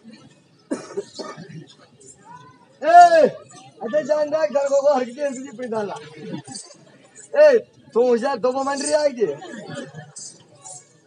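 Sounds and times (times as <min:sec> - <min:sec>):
person's cough-like vocal outburst: 0:00.7 - 0:01.6.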